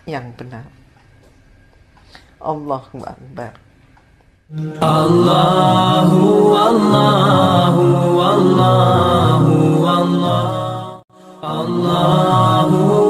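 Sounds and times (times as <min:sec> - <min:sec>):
vocal chant in long held notes: 0:04.5 - 0:13.0.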